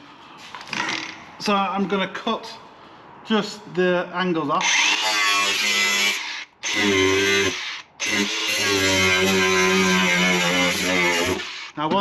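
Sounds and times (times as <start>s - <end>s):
angle grinder cutting sheet steel: 4.6s - 11.8s.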